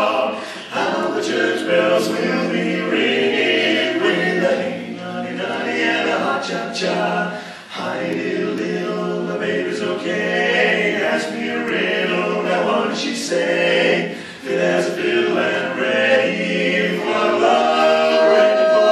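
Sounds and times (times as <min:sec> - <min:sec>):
male quartet singing a cappella: 0:00.0 - 0:18.9.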